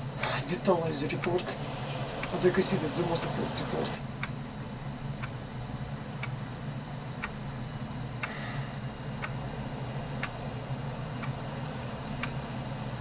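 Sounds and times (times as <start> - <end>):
steady low hum: 0.0 - 13.0
regular ticking: 5.2 - 5.4, 7.2 - 7.4, 9.2 - 9.5, 10.1 - 10.5, 11.1 - 11.5, 12.1 - 12.6.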